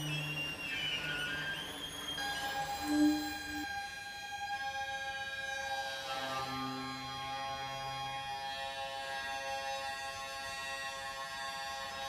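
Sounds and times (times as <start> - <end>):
alto saxophone: 0.0 - 4.0
hurdy-gurdy drone: 0.0 - 12.0.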